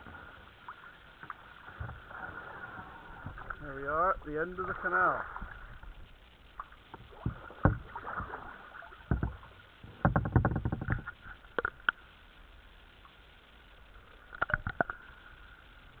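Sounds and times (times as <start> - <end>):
paddle splashes: 0.0 - 12.1
paddle knocking plastic hull: 6.6 - 11.9.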